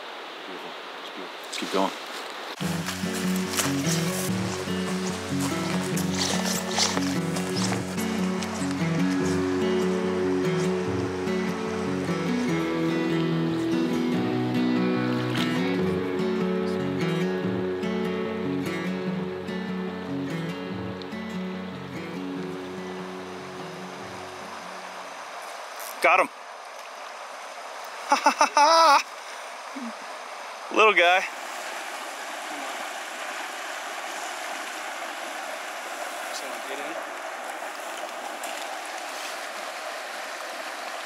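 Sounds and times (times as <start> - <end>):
music of held chords: 2.6 - 24.6.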